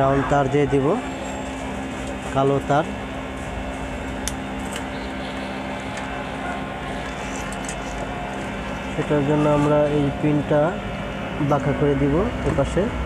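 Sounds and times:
low background hum: 0.0s - 13.0s.

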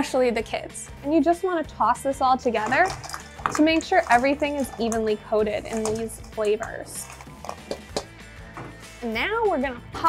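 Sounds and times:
soft background music: 0.0s - 10.0s
spatula scraping metal bowl: 2.5s - 8.1s.

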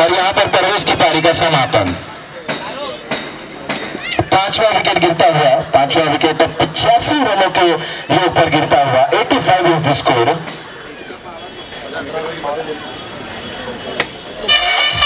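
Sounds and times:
man talking loudly: 0.0s - 2.1s, 4.2s - 10.5s.

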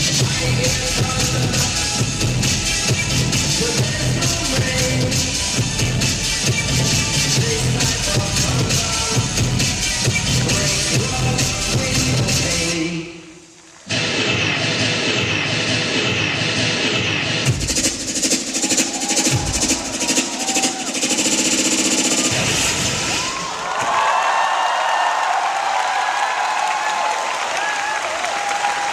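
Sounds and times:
dance music with hard beat: 0.0s - 12.9s, 13.9s - 23.3s
crowd cheering loudly: 18.5s - 28.9s.

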